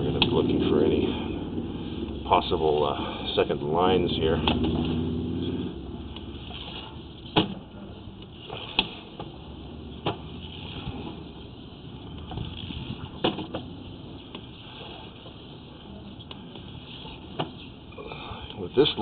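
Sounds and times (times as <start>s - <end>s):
steady low rumble: 0.0s - 19.0s.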